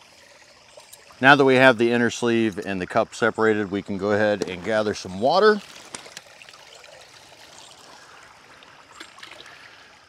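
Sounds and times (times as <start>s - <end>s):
creek water trickling: 0.0s - 10.0s
water running into a cup: 4.4s - 10.0s.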